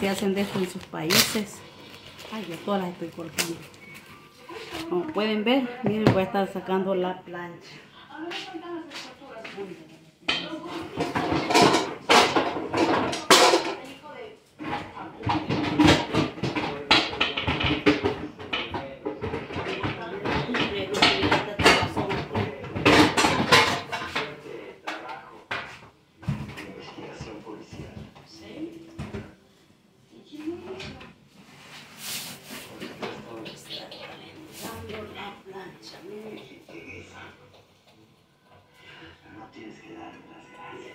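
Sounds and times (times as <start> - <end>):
people talking: 0.0 - 1.6, 4.5 - 11.4
pots and dishes clattering: 10.2 - 14.0, 14.6 - 28.3.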